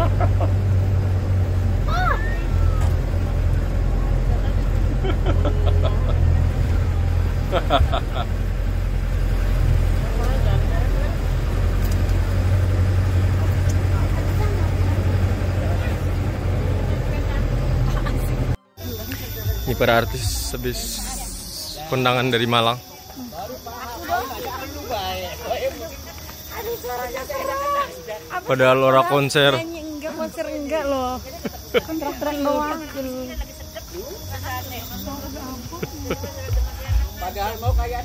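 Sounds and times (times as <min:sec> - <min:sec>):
bus engine drone: 0:00.0 - 0:38.0
passengers' voices: 0:09.2 - 0:37.7.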